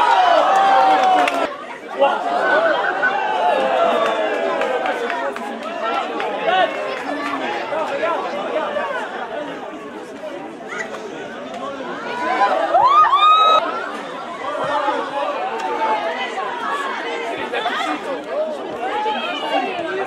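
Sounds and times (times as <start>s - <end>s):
spectators and players shouting: 0.0s - 20.0s.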